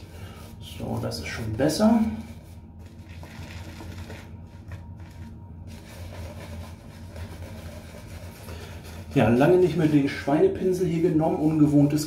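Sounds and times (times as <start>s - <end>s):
shaving brush rubbing on face: 0.0s - 10.6s
steady low hum: 0.0s - 12.0s.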